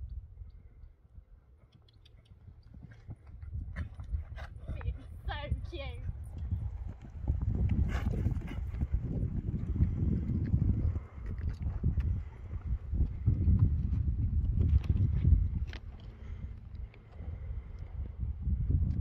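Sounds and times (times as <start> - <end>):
hoofbeats on sand: 2.2 - 18.2.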